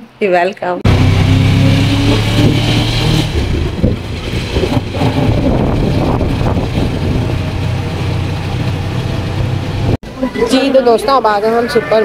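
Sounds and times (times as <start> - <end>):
vehicle engine and road noise: 0.8 - 12.0.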